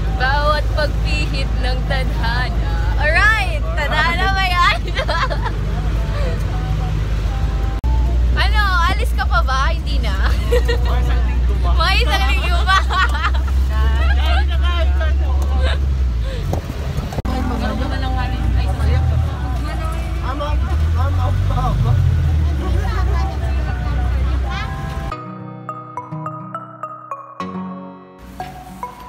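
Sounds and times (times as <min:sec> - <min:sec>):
voices: 0:00.0 - 0:16.5, 0:17.2 - 0:25.1
vehicle engine and road rumble: 0:00.0 - 0:25.2.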